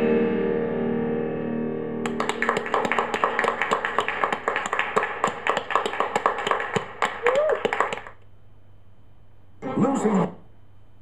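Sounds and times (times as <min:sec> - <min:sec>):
people clapping: 0:02.0 - 0:08.2.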